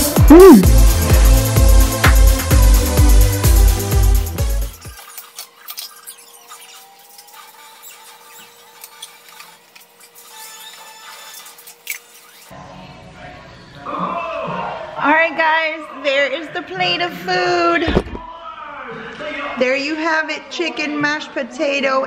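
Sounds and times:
music: 0.0 - 5.6, 12.5 - 13.9.

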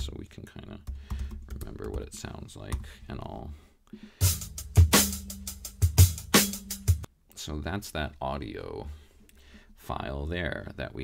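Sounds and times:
drum kit beat: 3.9 - 7.1.

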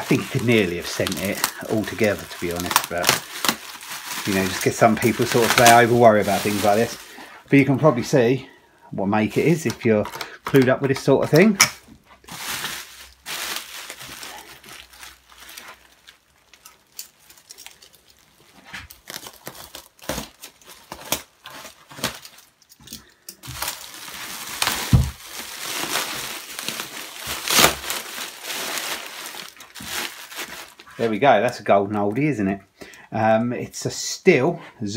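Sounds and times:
plastic packaging crinkling: 0.0 - 8.4, 9.2 - 32.2.

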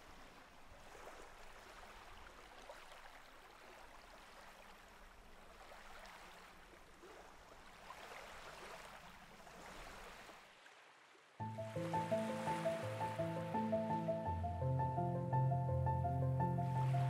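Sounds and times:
small waves washing on beach: 0.0 - 13.6.

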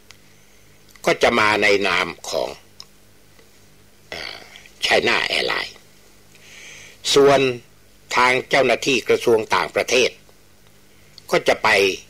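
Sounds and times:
faint steady hum: 0.0 - 12.0
man speaking: 1.0 - 2.7, 4.1 - 5.8, 7.0 - 10.2, 11.3 - 12.0
man's breathy vocal sound: 6.4 - 7.0.

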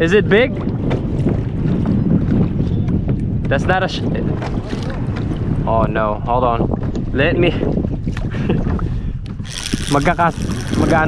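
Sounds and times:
wind on microphone: 0.0 - 11.0
water splashing against kayak: 0.4 - 5.8, 6.7 - 11.0.

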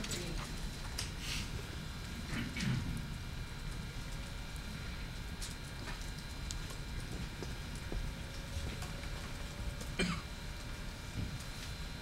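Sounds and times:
low room hum: 0.0 - 12.0
person coughing: 10.0 - 10.3.

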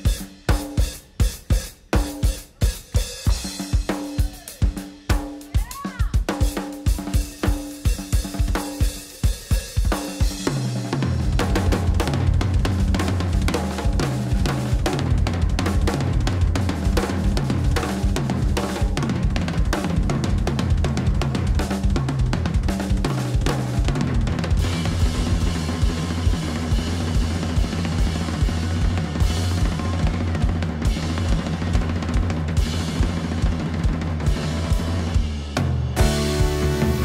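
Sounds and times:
drum kit groove: 0.0 - 37.0
electric bass line: 11.0 - 32.0, 34.1 - 37.0.

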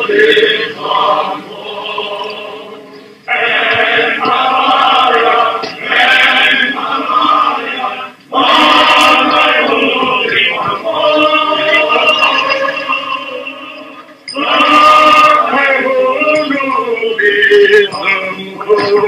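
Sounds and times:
male choir singing a hymn: 0.0 - 19.0.

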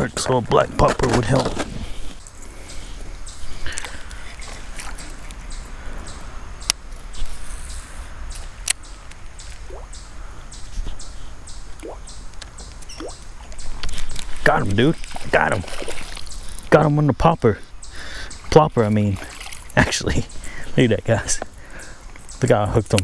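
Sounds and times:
light water sounds: 3.0 - 6.3, 12.9 - 16.8, 18.5 - 23.0.

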